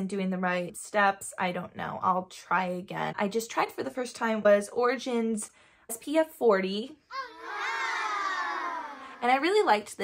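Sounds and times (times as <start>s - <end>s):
high vocal wail: 7.1s - 9.2s.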